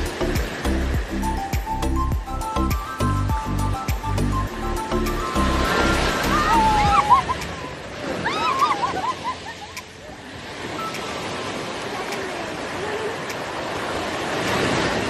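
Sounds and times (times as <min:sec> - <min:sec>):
sea water washing: 0:00.0 - 0:01.8, 0:04.5 - 0:15.0
short high rising-and-falling calls: 0:04.7 - 0:07.2.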